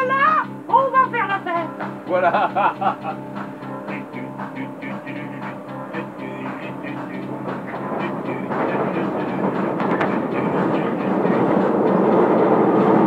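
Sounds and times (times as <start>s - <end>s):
keyboard tune: 0.0s - 13.0s
train rumble and rattle: 2.9s - 13.0s.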